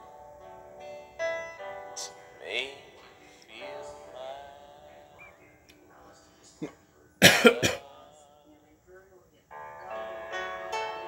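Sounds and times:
faint music: 0.0s - 11.0s
faint voices: 2.0s - 10.5s
person coughing: 6.6s - 7.9s.

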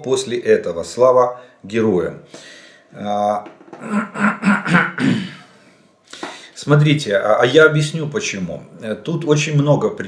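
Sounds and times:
man clearing his throat: 3.7s - 5.5s.

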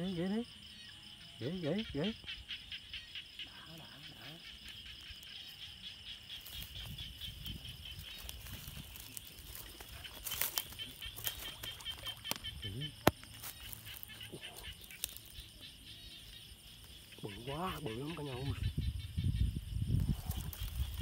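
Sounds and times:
night insects chirping: 0.0s - 21.0s.

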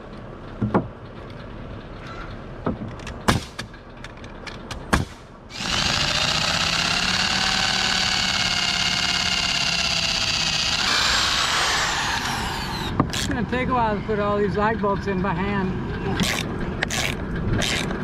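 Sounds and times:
sharp knocks: 0.6s - 1.0s, 2.6s - 3.8s, 4.5s - 5.8s
electric drill boring wood: 5.5s - 13.3s.

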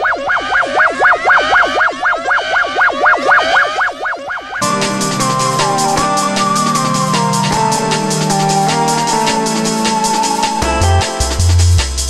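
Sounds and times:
warbling alert siren tone: 0.0s - 10.9s.

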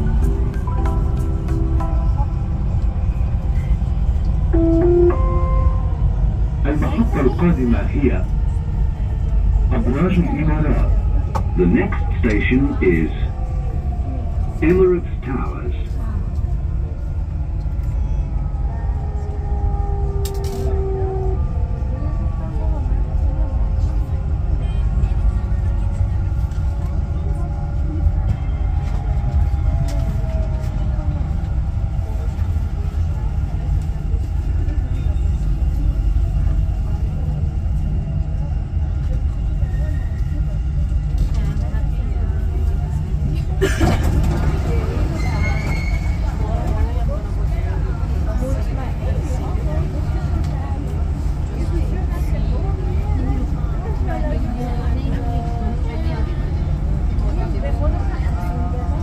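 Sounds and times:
train rumble from inside: 0.0s - 59.0s.

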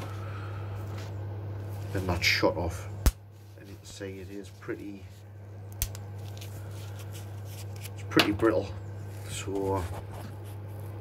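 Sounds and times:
steady low hum: 0.0s - 11.0s
gloved hand rubbing wood: 9.0s - 11.0s.

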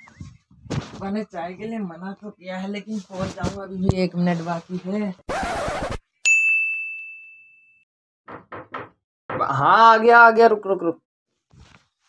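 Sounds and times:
bell-like ding: 6.2s - 7.8s.

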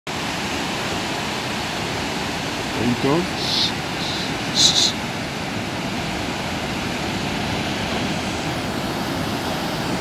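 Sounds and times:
sea surf breaking: 0.1s - 10.0s.

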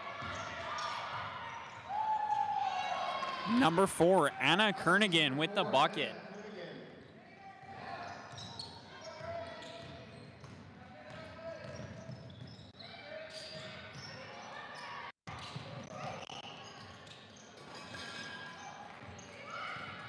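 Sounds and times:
voices echoing in gymnasium: 0.0s - 12.2s, 12.8s - 17.0s.

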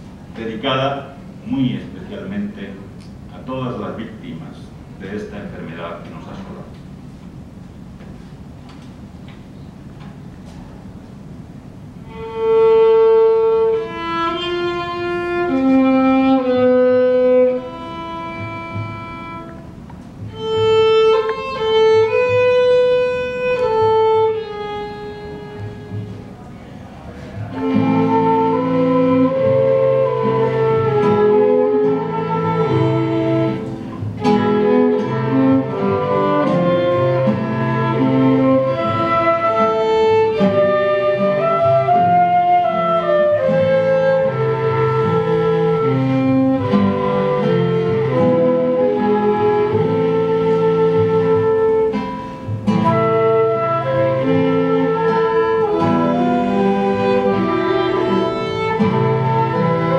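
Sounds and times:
classical guitar: 0.0s - 59.9s
clarinet: 11.9s - 59.9s
violin: 12.0s - 59.9s
flute: 27.0s - 59.9s.

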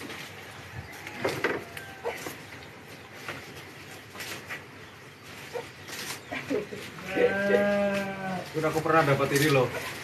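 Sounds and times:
cow mooing: 7.0s - 8.4s.

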